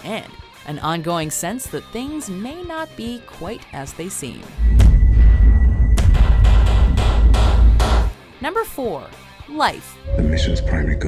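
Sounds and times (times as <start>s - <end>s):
deep bass rumble: 10.1s - 11.0s
heavy percussive hits: 10.1s - 11.0s.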